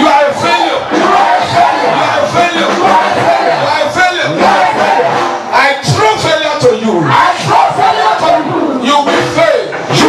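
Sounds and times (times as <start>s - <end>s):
man shouting through microphone: 0.0s - 2.7s, 5.5s - 10.0s
crowd voices: 0.0s - 10.0s.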